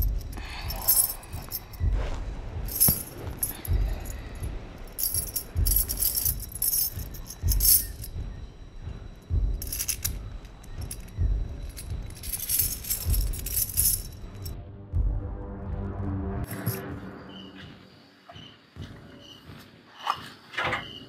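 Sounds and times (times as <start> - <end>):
metal chain jingling: 0.0 - 2.0, 2.7 - 8.2, 9.3 - 14.6, 16.5 - 16.8
background music with low beats: 0.0 - 21.0.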